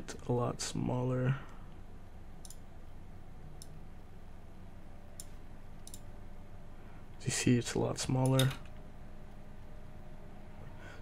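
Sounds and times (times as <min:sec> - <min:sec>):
low background hum: 0:00.0 - 0:11.0
computer mouse clicks: 0:02.4 - 0:02.6, 0:05.2 - 0:06.1.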